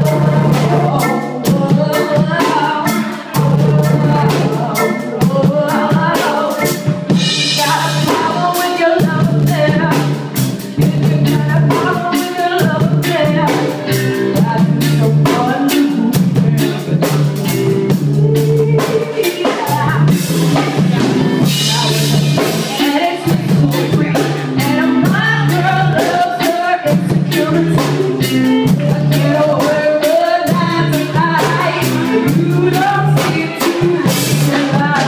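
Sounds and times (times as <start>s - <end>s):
drum kit steady beat: 0.0s - 35.0s
electric guitar: 0.0s - 35.0s
woman singing: 0.0s - 35.0s.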